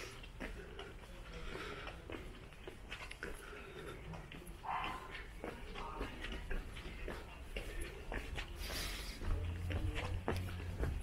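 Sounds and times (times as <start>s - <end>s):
faint knocks like footsteps: 0.0s - 8.6s, 9.2s - 11.0s.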